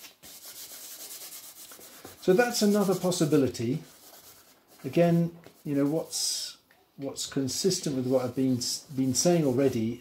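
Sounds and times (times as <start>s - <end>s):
charcoal rubbing on paper: 0.0s - 5.0s.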